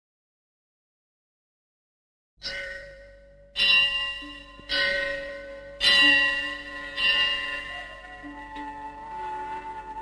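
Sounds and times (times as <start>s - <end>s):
bell-like chime: 2.4s - 9.8s.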